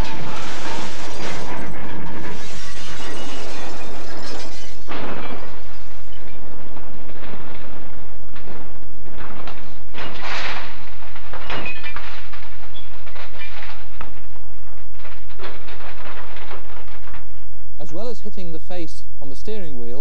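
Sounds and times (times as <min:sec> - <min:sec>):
car crash crunching and shattering: 0:00.0 - 0:17.6
steady low hum: 0:00.0 - 0:19.8.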